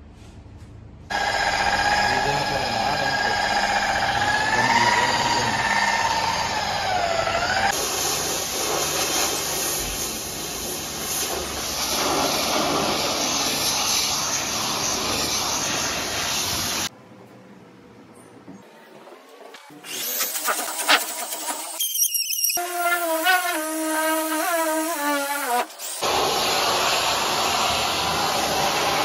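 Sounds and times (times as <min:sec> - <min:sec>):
pressure washer whine: 0:01.1 - 0:16.9, 0:19.8 - 0:29.0
water spray hissing: 0:07.7 - 0:16.9, 0:19.8 - 0:29.0.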